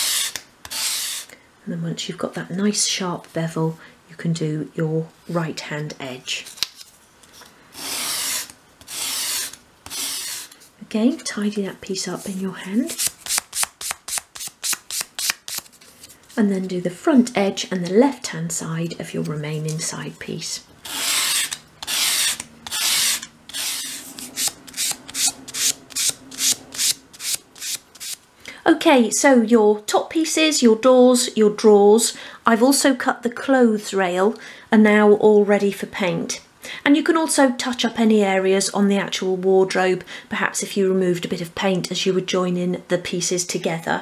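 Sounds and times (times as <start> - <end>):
wood rasping on sandpaper: 0.0 - 1.3, 7.8 - 10.5, 20.9 - 28.2.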